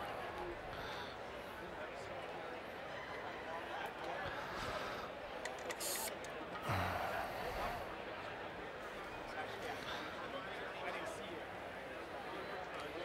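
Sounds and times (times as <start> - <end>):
crowd babble: 0.0 - 13.0
airbrush hiss: 5.8 - 6.1.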